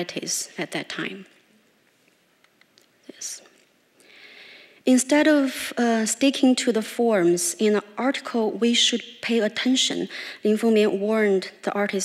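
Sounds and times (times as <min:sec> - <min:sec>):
person breathing: 0:04.0 - 0:04.8, 0:10.1 - 0:10.4.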